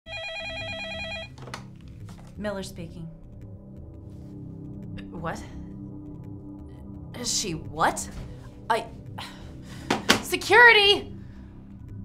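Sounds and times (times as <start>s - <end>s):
desk phone ringing: 0.0s - 1.4s.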